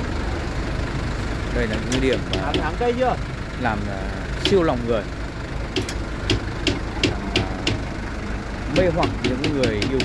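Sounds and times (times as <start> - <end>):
engine idling with knocking: 0.0 - 10.0.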